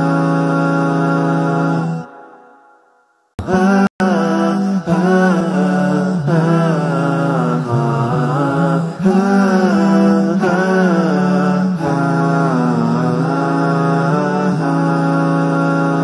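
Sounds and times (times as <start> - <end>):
chant-like singing: 0.0 - 2.8, 3.4 - 16.0.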